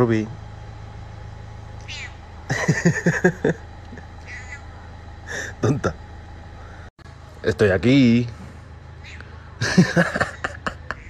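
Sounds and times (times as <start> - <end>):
person laughing: 2.5 - 4.1, 9.6 - 11.0.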